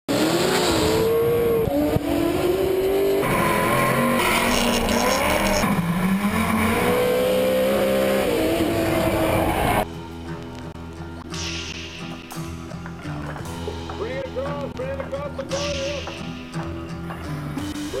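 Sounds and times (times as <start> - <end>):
drift car engines at full throttle: 0.1 - 9.8.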